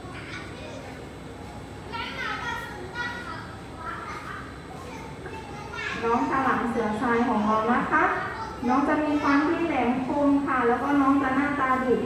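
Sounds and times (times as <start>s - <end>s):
children chattering: 0.0s - 9.9s
children's high-pitched calls: 1.9s - 9.9s.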